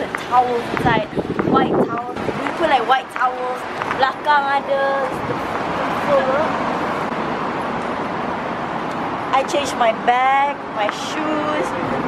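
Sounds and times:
cars passing on street: 0.0 - 12.0.

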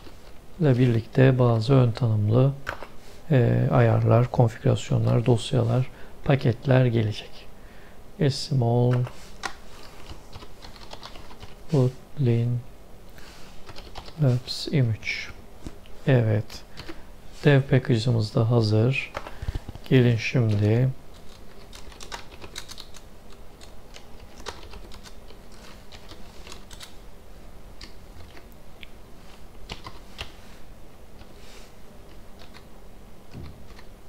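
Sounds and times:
computer keyboard typing: 9.0 - 11.6, 13.6 - 14.2, 21.1 - 26.9, 29.7 - 30.3, 32.4 - 32.7, 33.3 - 33.9.

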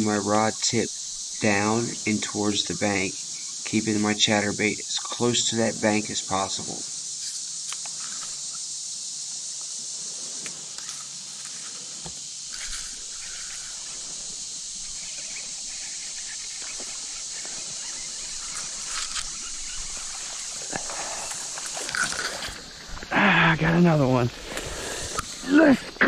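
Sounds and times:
steady outdoor hiss: 0.0 - 26.0
faint rustling: 9.3 - 23.1.

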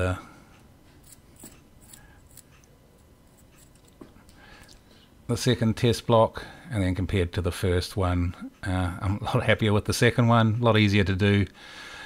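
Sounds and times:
faint clicks and rubbing: 0.5 - 4.8.

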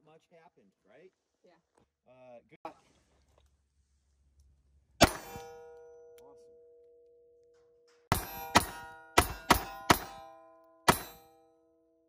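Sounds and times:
pistol shots: 5.0 - 5.6, 8.1 - 11.3
steel target ringing: 5.0 - 7.1, 7.9 - 12.0.

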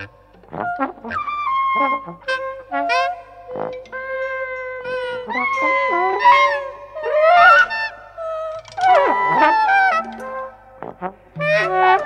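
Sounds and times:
free jazz with wind brass and voice: 0.0 - 12.0.

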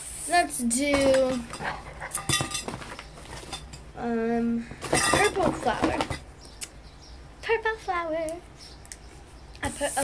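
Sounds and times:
painting supplies clinking: 0.8 - 3.9, 4.8 - 6.3.

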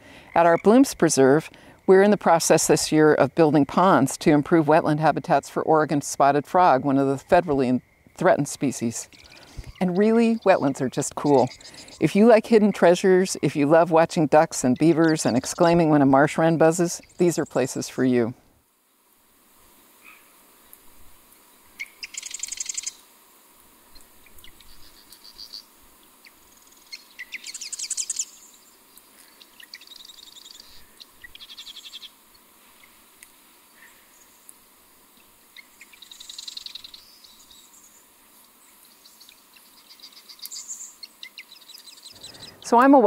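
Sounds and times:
faint steady hiss: 0.0 - 43.0
songbird rattling trills: 8.3 - 17.9, 21.8 - 23.0, 23.9 - 33.0, 35.5 - 43.0.

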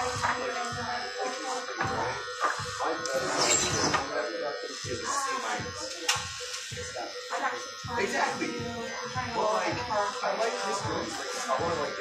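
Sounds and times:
background music with singing: 0.0 - 12.0.

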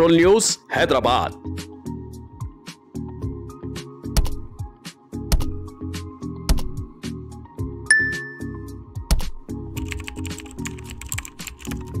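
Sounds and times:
background music: 0.0 - 12.0
keyboard key clicks: 9.8 - 12.0.

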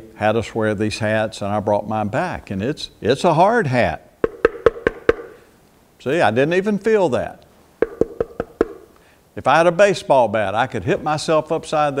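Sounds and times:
knuckles knocking on hard hat: 4.2 - 5.4, 7.8 - 8.9.

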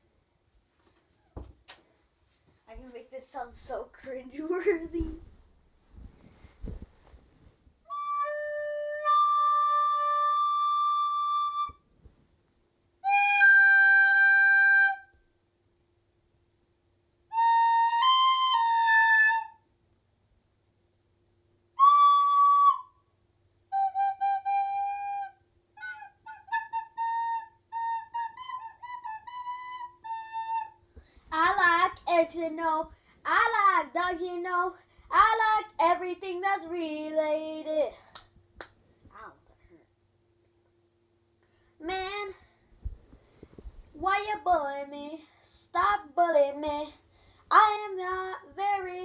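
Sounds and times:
soprano recorder playing: 7.9 - 11.8, 13.0 - 15.2, 17.3 - 19.6, 21.8 - 23.0, 23.7 - 30.8.

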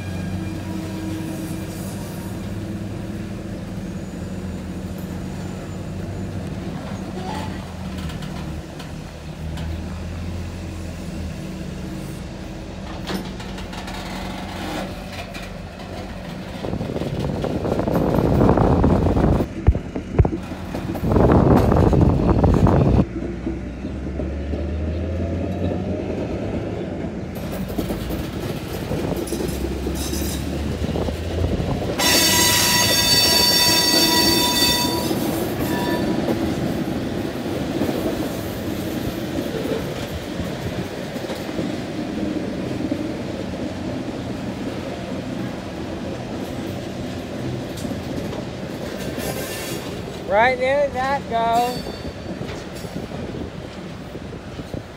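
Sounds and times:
shrill wheel squeal: 0.0 - 2.6, 3.6 - 7.6, 29.4 - 30.6, 32.0 - 36.4, 49.0 - 50.0, 51.5 - 52.9
rail car rumbling on track: 0.0 - 54.9.

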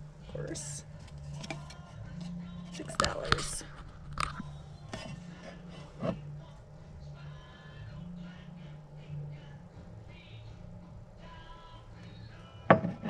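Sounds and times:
steady low hum: 0.0 - 13.0
ceramic pot knocking and clinking: 12.7 - 13.0.

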